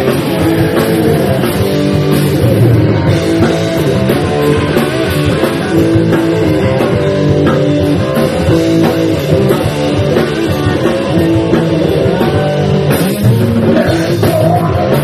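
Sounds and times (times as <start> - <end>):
live punk rock band: 0.0 - 15.0.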